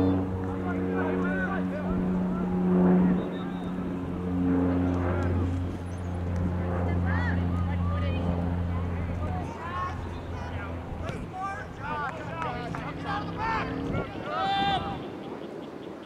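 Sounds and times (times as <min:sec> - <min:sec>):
low mechanical drone: 0:00.0 - 0:15.7
distant voices calling out: 0:00.0 - 0:16.0.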